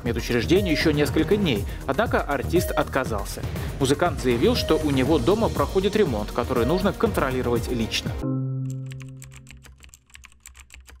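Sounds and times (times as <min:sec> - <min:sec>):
low music chord: 0:08.1 - 0:08.8
keyboard typing clicks: 0:08.7 - 0:11.0.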